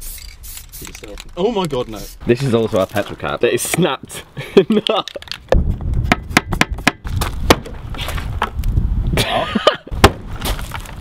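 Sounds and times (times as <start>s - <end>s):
wind rumble on microphone: 5.4s - 11.0s
loud thump: 10.0s - 10.6s.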